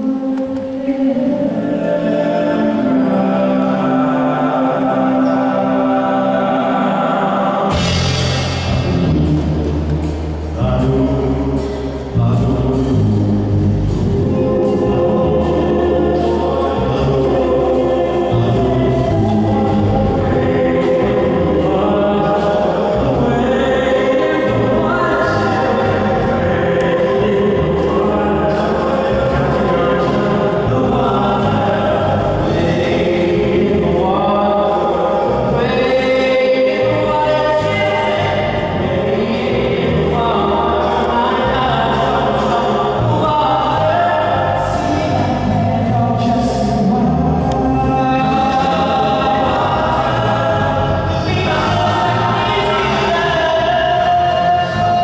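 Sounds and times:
musical accompaniment: 0:00.0 - 0:55.0
vocal group singing harmonies: 0:00.0 - 0:55.0.

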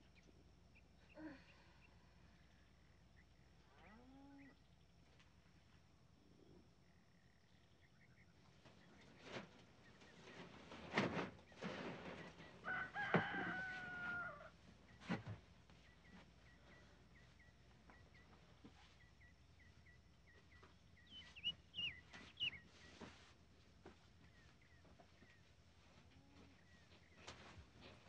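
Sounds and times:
small birds chirping: 0:00.0 - 0:10.5, 0:14.7 - 0:28.0
brief rustles and thumps: 0:08.7 - 0:14.2, 0:14.9 - 0:16.3
rooster crowing: 0:12.6 - 0:14.6.

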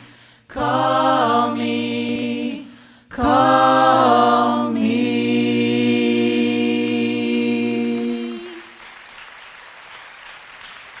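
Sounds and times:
audience applauding: 0:08.5 - 0:11.0.

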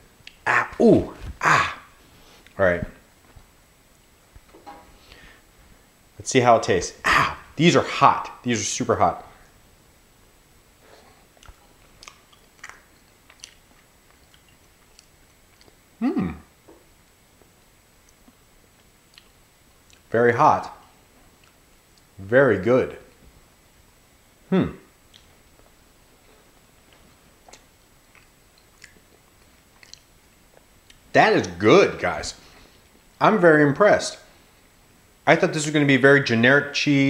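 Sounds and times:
man chewing food: 0:10.8 - 0:16.0, 0:16.6 - 0:20.1, 0:21.2 - 0:22.2, 0:25.0 - 0:31.1
wet mouth clicks: 0:11.4 - 0:15.8, 0:25.1 - 0:25.7, 0:26.9 - 0:31.0.

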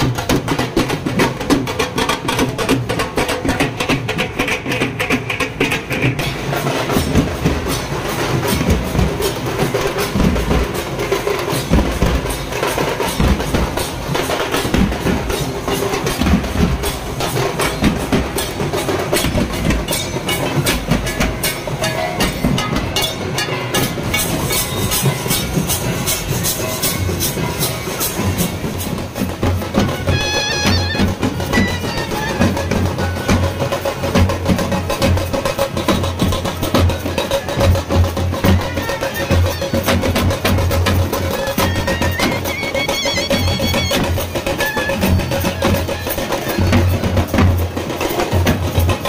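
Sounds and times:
drums beaten with sticks: 0:00.0 - 0:49.0.

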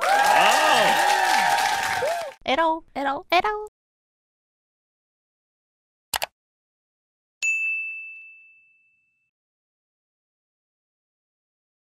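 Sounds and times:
notification bell ding: 0:07.4 - 0:09.3.

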